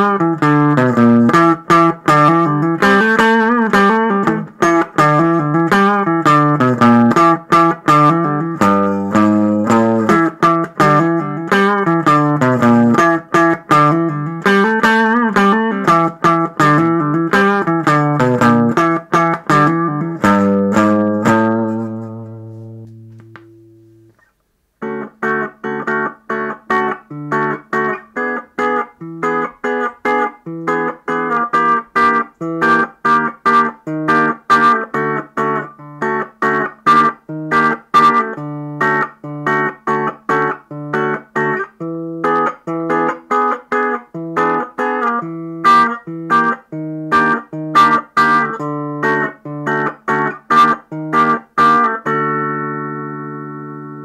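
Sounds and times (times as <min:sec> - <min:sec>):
picked guitar notes: 0:00.0 - 0:54.0.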